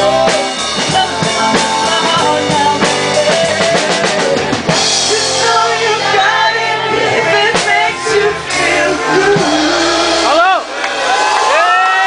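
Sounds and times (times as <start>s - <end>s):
drum kit beat: 0.0s - 12.0s
rock band playing: 0.0s - 12.0s.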